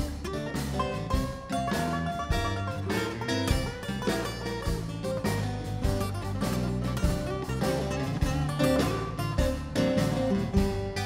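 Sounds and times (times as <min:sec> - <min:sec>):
acoustic guitars playing blues: 0:00.0 - 0:11.0.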